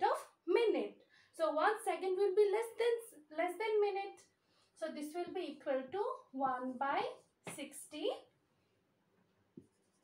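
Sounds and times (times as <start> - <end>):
marker scratching on whiteboard: 9.6 - 10.0.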